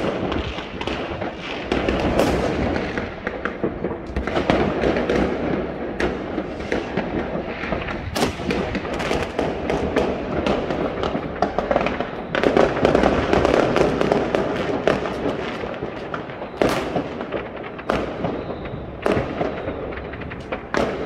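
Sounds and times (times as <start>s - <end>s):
fireworks crackling: 0.0s - 21.0s
loud firework bangs: 0.0s - 21.0s.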